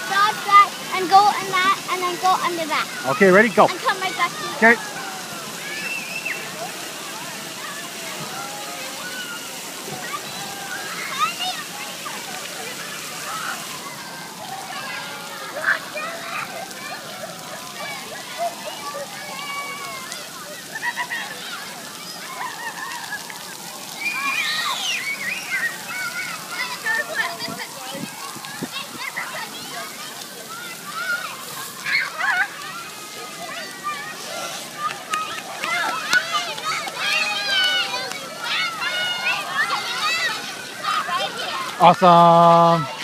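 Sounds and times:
children shouting and chattering: 0.0 - 43.0
water jets splattering on pavement: 0.0 - 43.0.

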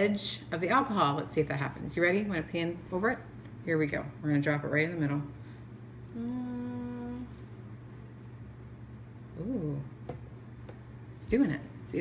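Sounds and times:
person humming a held note: 6.1 - 7.4.

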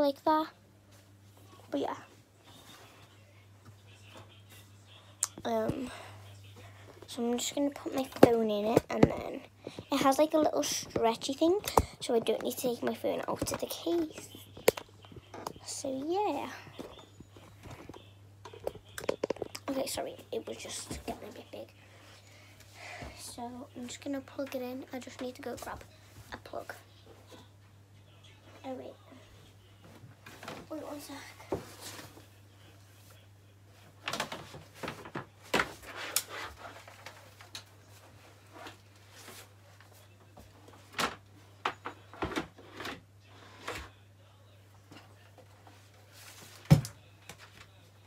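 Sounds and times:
low steady hum: 0.0 - 48.0.

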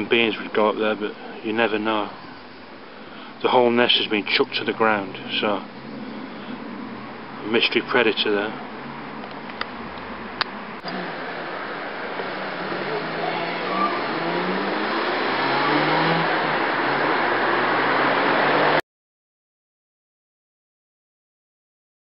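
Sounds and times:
car engine accelerating: 4.2 - 18.8.

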